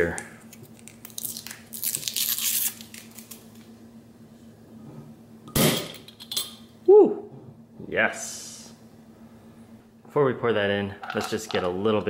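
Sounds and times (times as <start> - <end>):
paper seal tearing: 1.1 - 3.3.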